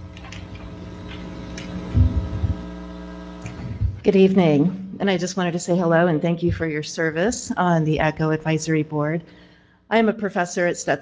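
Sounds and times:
electrical hum: 0:00.0 - 0:11.0
low bumps: 0:01.8 - 0:02.7.

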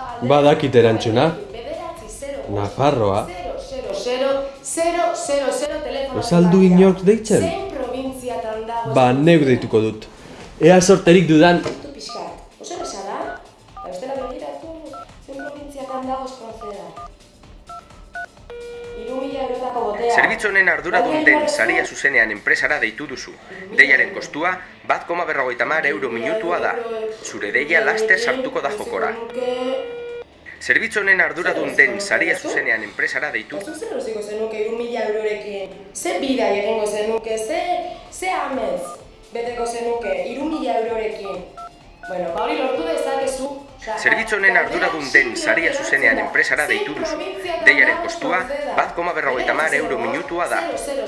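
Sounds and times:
person talking: 0:06.1 - 0:07.9, 0:19.8 - 0:22.8
phone keypad two-tone beeps: 0:12.1 - 0:16.0, 0:16.6 - 0:17.1, 0:17.7 - 0:19.1, 0:29.1 - 0:30.2, 0:33.6 - 0:33.8, 0:41.2 - 0:42.3
steady phone tone: 0:12.1 - 0:16.0, 0:17.7 - 0:19.4, 0:28.8 - 0:30.3, 0:41.2 - 0:42.3.

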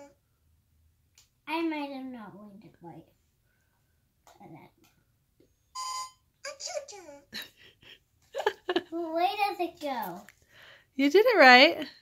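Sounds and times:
toy scanner beep: 0:05.8 - 0:06.2.

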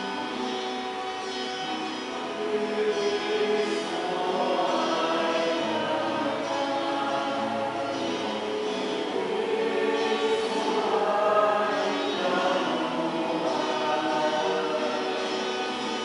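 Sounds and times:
church choir singing: 0:00.0 - 0:16.0.

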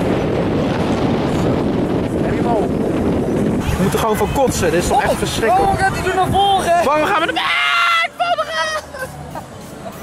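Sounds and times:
wind rushing over microphone: 0:00.0 - 0:08.1.

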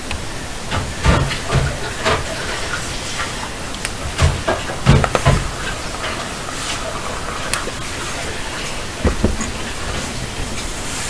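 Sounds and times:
steady hiss of noise: 0:00.0 - 0:11.0.

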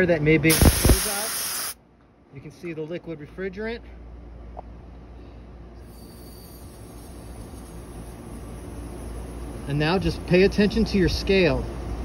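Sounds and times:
refrigerant hissing through hoses: 0:00.5 - 0:01.8.

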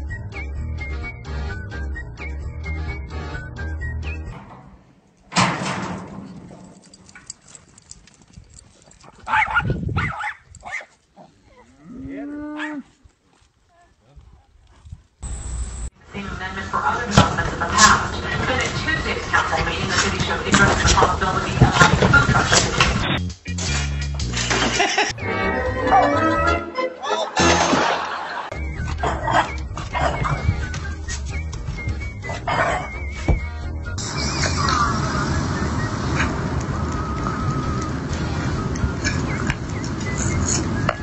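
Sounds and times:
background music: 0:00.0 - 0:04.4, 0:23.0 - 0:36.7
puppy yapping: 0:09.3 - 0:10.9, 0:29.0 - 0:30.5.

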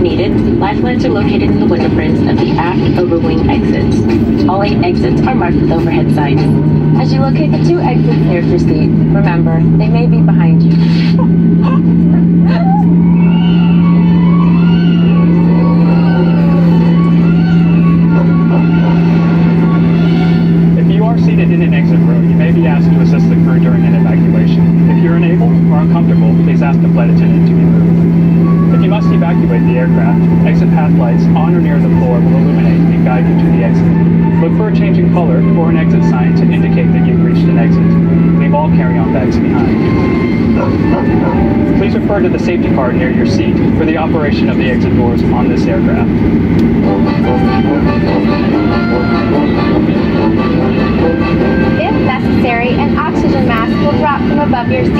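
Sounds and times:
aircraft cabin hum: 0:00.0 - 0:54.9
faint voices: 0:00.0 - 0:54.9
low engine rumble: 0:00.0 - 0:54.9.

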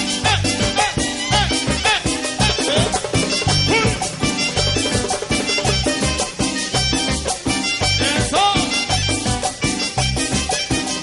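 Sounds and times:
bass: 0:00.0 - 0:11.0
clarinet lead: 0:00.0 - 0:11.0
latin percussion: 0:00.0 - 0:11.0.

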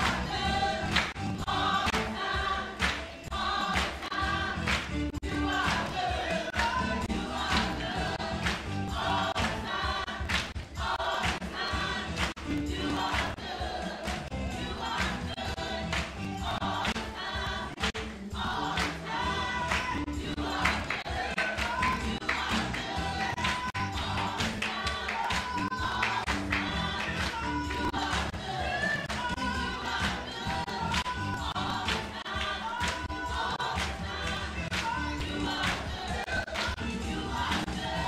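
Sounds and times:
hand claps: 0:00.0 - 0:00.3, 0:00.9 - 0:02.2, 0:02.8 - 0:05.0, 0:05.6 - 0:06.8, 0:07.5 - 0:08.8, 0:09.4 - 0:13.4, 0:14.0 - 0:14.3, 0:14.9 - 0:15.3, 0:15.9 - 0:17.1, 0:17.8 - 0:19.0, 0:19.6 - 0:29.4, 0:30.0 - 0:36.9, 0:37.5 - 0:37.9
choir singing gospel: 0:00.0 - 0:38.0.

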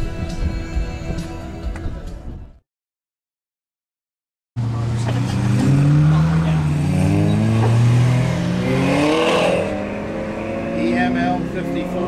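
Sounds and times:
car engine revving hard: 0:04.6 - 0:12.0.

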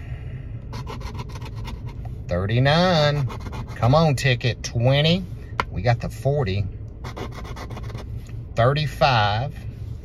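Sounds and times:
coin scratching ticket: 0:00.7 - 0:01.9, 0:07.0 - 0:08.0.

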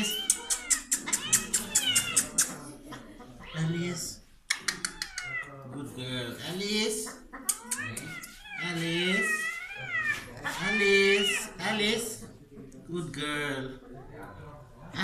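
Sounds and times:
cat yowling: 0:00.0 - 0:02.4.

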